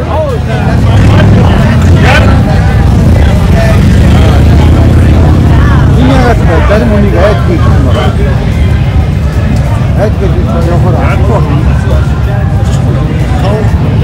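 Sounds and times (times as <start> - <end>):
crowd voices: 0.0 - 14.0
motorcycle engines rumbling: 0.0 - 14.0.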